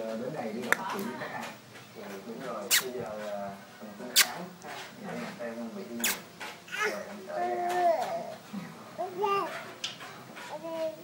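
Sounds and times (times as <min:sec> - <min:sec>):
babies babbling and cooing: 0:06.7 - 0:08.4, 0:09.0 - 0:09.8, 0:10.4 - 0:11.0.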